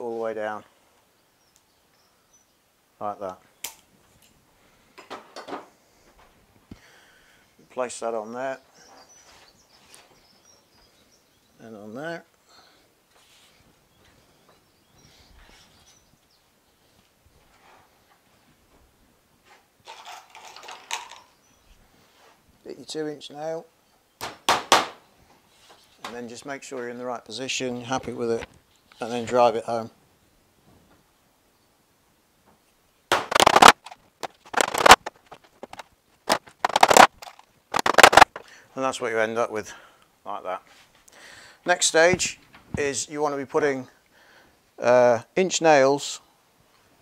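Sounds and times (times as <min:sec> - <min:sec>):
tools clattering and rustling: 0:05.0 - 0:05.8, 0:19.5 - 0:21.4, 0:33.3 - 0:38.4
faint handling sounds: 0:13.1 - 0:22.6.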